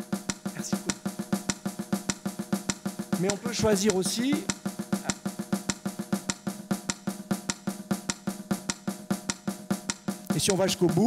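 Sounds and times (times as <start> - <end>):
looped percussion rhythm over loudspeakers: 0.0 - 11.0.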